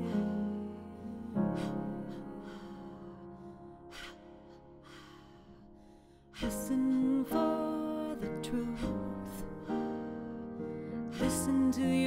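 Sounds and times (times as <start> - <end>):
held piano chord: 0.0 - 12.0.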